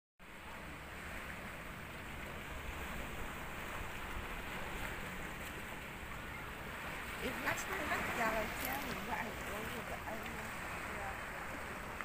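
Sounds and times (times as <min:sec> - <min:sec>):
calm sea water: 0:00.2 - 0:12.0.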